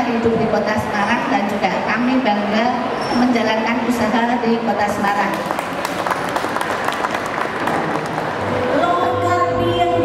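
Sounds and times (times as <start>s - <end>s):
audience applauding: 5.2s - 8.6s.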